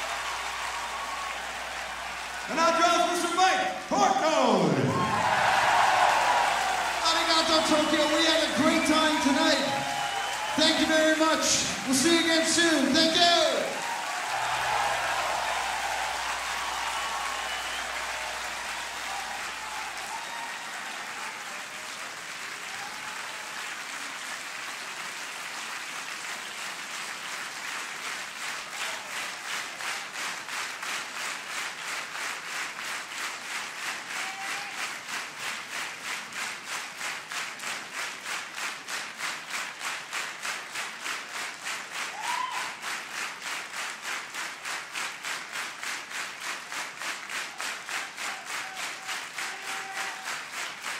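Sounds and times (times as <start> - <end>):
audience applauding: 0.0 - 50.9.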